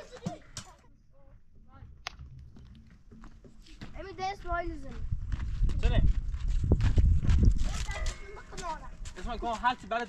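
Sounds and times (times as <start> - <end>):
footsteps on loose stones: 2.1 - 10.0.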